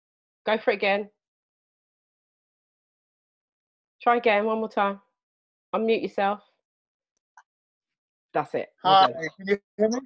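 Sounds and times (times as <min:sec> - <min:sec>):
tail of spoken word: 0:08.9 - 0:10.0.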